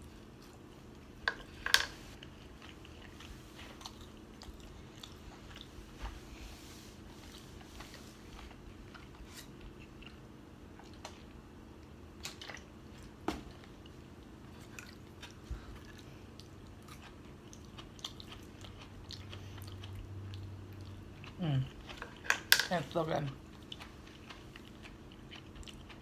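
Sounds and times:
person chewing food: 0.0 - 6.3, 7.0 - 26.0.

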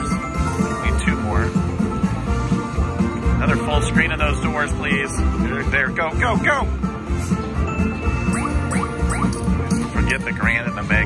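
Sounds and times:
slot machine bonus music: 0.0 - 2.5, 7.4 - 11.0
rising chime effects: 7.7 - 10.2.

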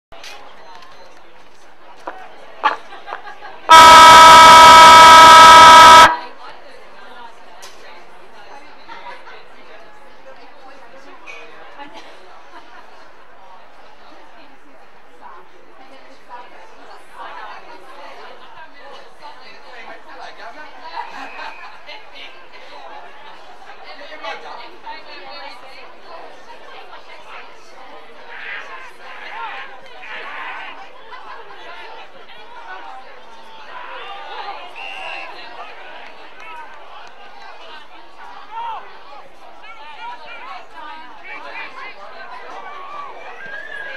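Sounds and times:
chatter and calling voices: 0.2 - 43.9
siren blast: 3.7 - 6.2.

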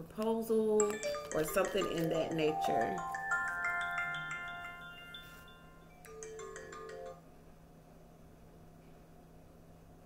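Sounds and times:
rising bell-like chime notes: 0.9 - 7.2.

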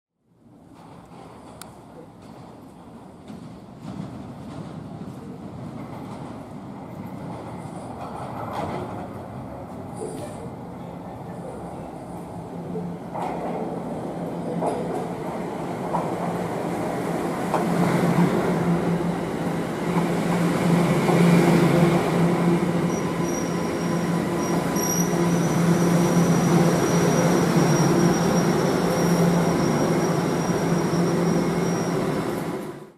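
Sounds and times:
subway train rumble: 0.2 - 32.9
thin high squeal: 22.8 - 32.0.

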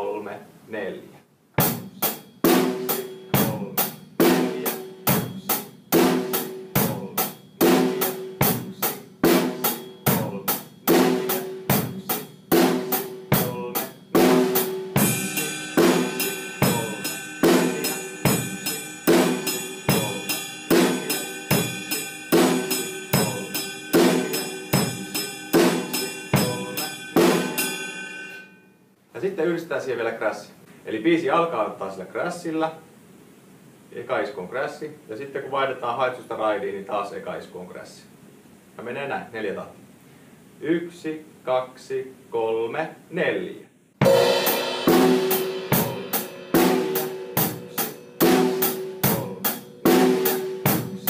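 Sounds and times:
drum kit playing rock beat: 1.6 - 28.3, 44.0 - 51.0
ride cymbal ringing: 1.8 - 28.7, 44.0 - 51.0.

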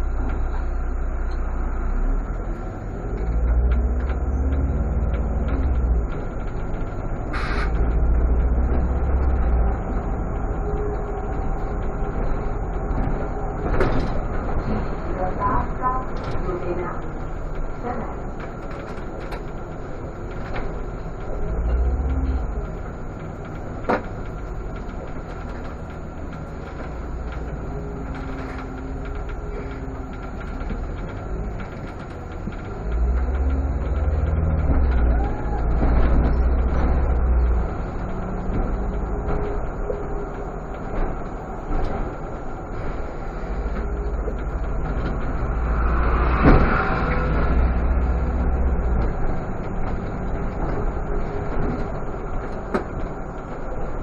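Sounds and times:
bus engine rumble: 0.0 - 54.0
road noise: 0.0 - 54.0.

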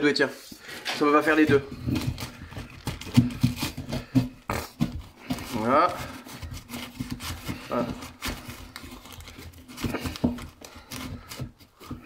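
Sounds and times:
wood rubbing on plasterboard: 0.4 - 12.0.

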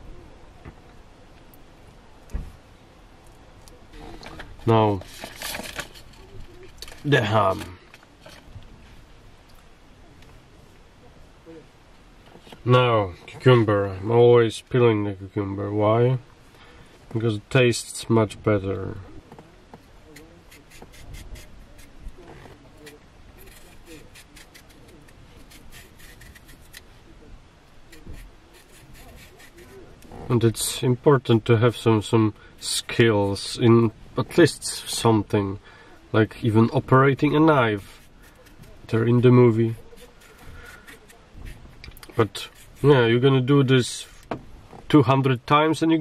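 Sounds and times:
knife scraping cucumber peel: 20.1 - 26.9, 27.9 - 29.9, 37.2 - 43.0.

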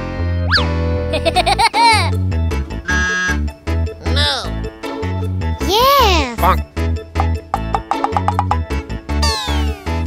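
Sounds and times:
upbeat children's music: 0.1 - 10.0.

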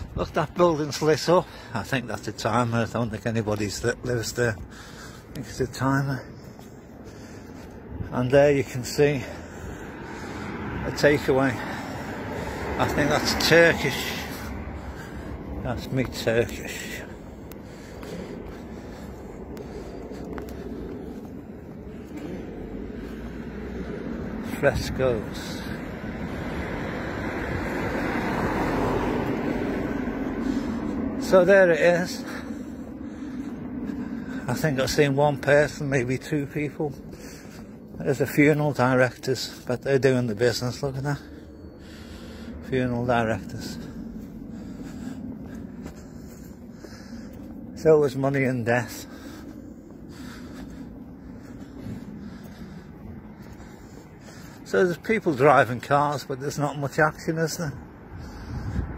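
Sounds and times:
distant road traffic rumble: 0.0 - 58.9
car driving past: 9.8 - 31.3.

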